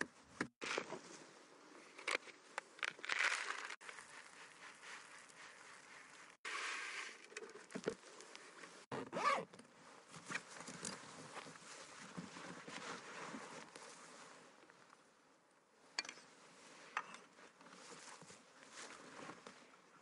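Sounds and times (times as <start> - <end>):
rustling and scraping: 0.6 - 8.9, 9.9 - 14.7, 16.5 - 19.7.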